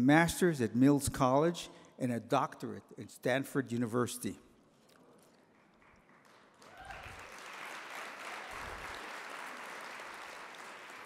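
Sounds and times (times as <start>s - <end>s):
audience applauding: 5.8s - 11.0s.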